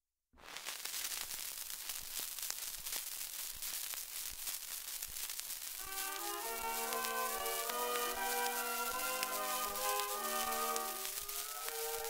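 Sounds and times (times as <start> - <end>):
record hiss and crackle: 0.4 - 12.0
orchestra playing: 5.9 - 12.0
record clicks: 6.0 - 12.0.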